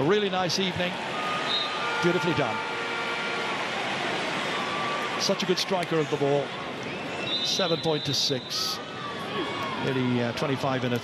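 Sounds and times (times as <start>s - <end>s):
stadium crowd cheering and applauding: 0.0s - 11.0s.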